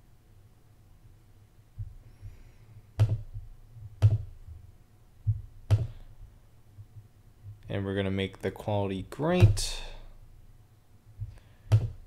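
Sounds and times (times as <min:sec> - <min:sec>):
faint low hum: 0:00.0 - 0:12.0
faint thumps: 0:01.8 - 0:07.6
sharp clicks with dull thump: 0:03.0 - 0:04.6, 0:05.2 - 0:06.0, 0:11.2 - 0:12.0.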